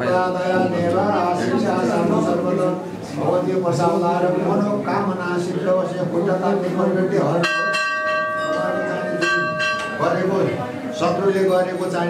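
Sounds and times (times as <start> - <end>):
metal bell ringing: 7.4 - 11.6.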